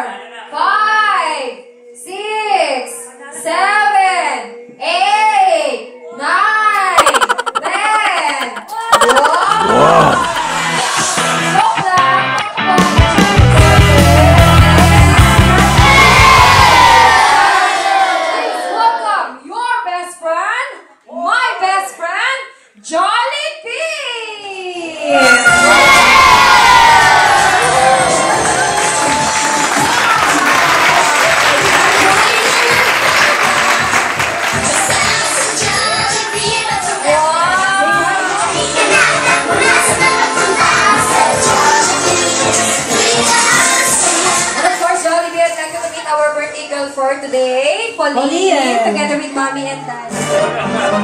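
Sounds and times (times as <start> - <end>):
party music: 6.8 - 11.3
children cheering and shouting: 15.6 - 18.7, 25.2 - 28.8.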